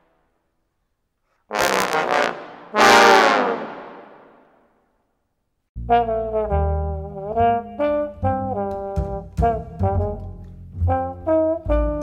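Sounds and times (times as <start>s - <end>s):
bass trombone phrase: 1.5s - 4.1s, 5.8s - 12.0s
trombone ensemble playing: 1.5s - 4.1s, 5.9s - 10.3s, 10.9s - 12.0s.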